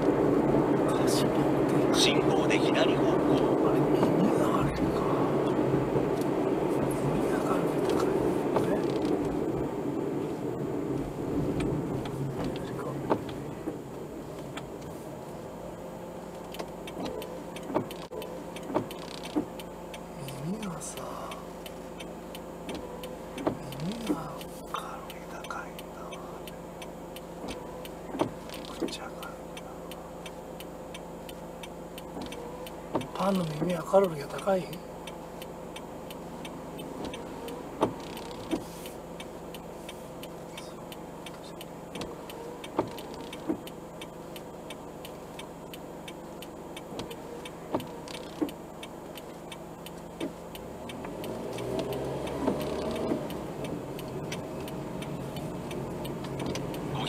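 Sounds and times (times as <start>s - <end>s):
car idling hum: 0.0s - 57.0s
road and tyre noise inside car: 0.0s - 57.0s
faint clicks and knocks: 16.3s - 57.0s.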